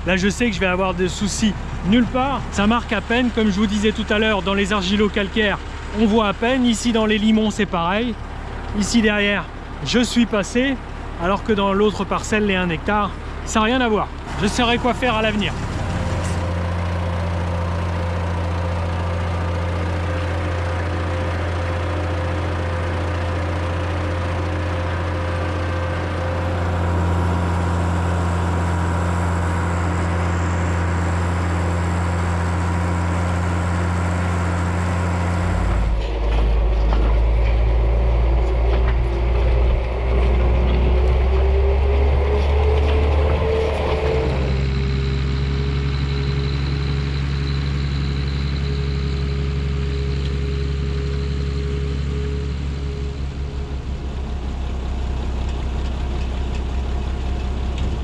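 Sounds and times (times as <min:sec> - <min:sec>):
tractor diesel engine running: 0:00.0 - 0:58.0
rising whine: 0:14.2 - 0:58.0.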